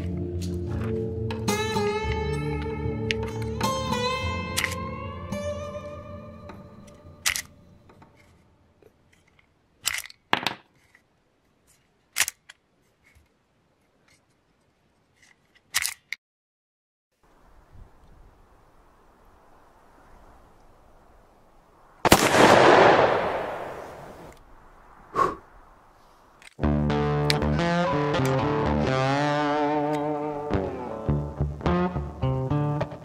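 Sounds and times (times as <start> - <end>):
guitar chord ringing: 0.2 - 7.2, 26.6 - 33.0
revolver gunshot with echo: 22.0 - 24.3.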